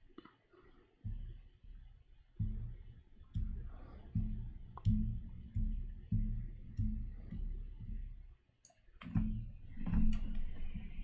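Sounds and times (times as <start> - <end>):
soft low thumps: 1.0 - 8.3, 9.0 - 11.0.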